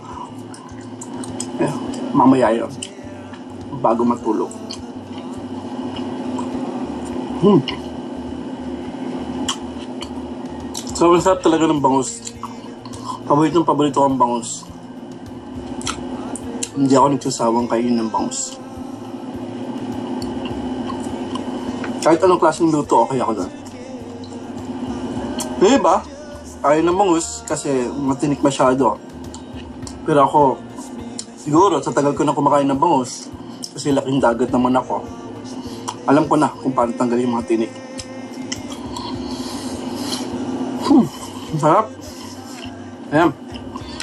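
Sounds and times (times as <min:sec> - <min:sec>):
low background hum: 0:00.0 - 0:44.0
person humming hmm: 0:07.3 - 0:08.0, 0:38.0 - 0:42.8.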